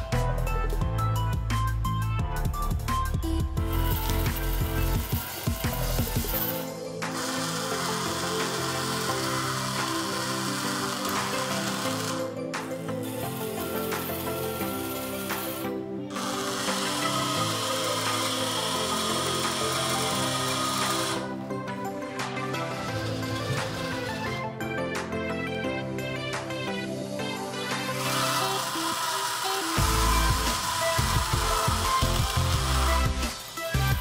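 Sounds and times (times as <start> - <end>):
background music: 0.0 - 34.0
small electric motors running: 3.7 - 21.4, 22.4 - 24.4, 27.5 - 34.0.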